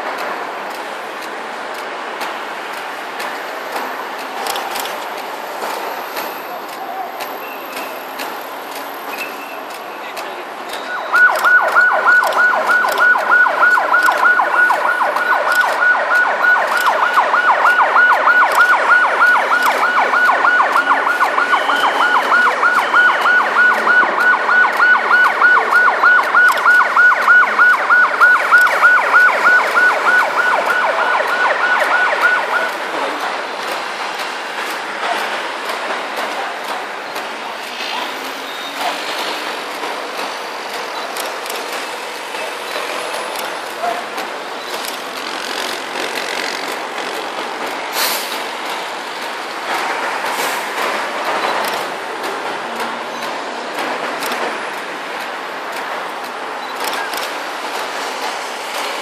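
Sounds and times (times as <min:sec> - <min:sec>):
vehicle traffic passing: 0:00.0 - 0:59.0
electronic siren yelp: 0:10.8 - 0:32.9.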